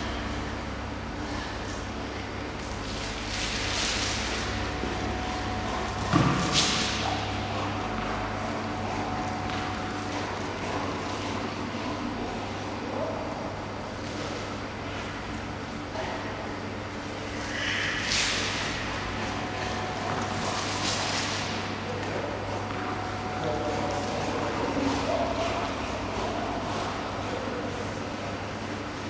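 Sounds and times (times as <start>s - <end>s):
low hum: 0.0s - 29.0s.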